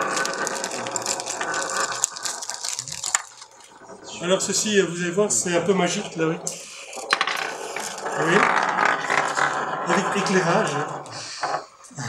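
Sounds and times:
spinning top rattling on table: 0.0 - 4.6, 5.3 - 11.8.

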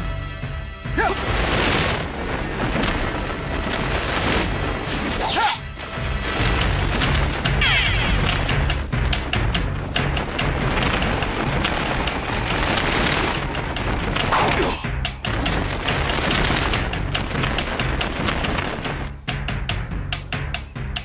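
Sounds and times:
action film music with low beat: 0.0 - 21.0
booms and crashing impacts: 0.8 - 21.0.

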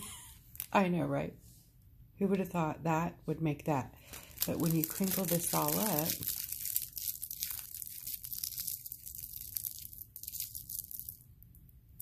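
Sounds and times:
cellophane crinkling: 4.0 - 11.3.

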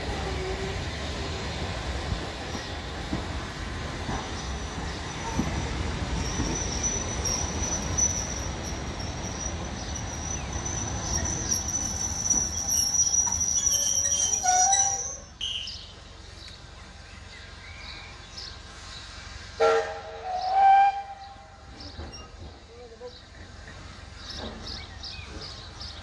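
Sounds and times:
train coaches rumbling: 0.0 - 26.0
high-pitched wheel squeal: 5.2 - 15.8.

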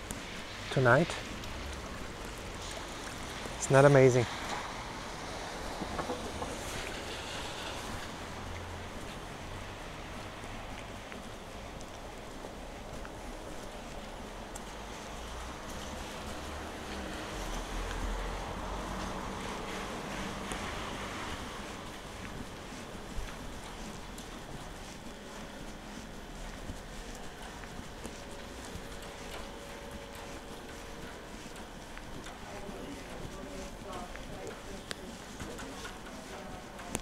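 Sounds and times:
steady outdoor hiss: 0.0 - 37.0.

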